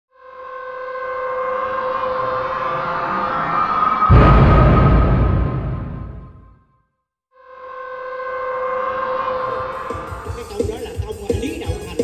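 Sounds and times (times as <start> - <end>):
siren-like rising drone: 0.1 - 6.4.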